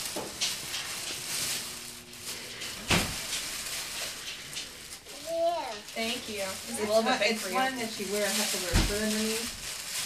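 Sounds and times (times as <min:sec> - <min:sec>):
tissue paper rustling: 0:00.0 - 0:10.0.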